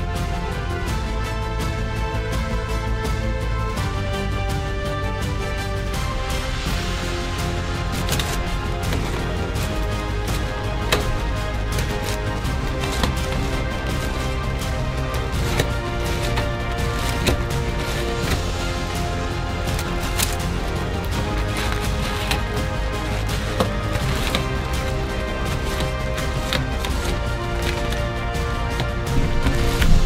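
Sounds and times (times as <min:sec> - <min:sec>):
background music: 0:00.0 - 0:30.0
puzzle cube clicking turns: 0:07.7 - 0:30.0.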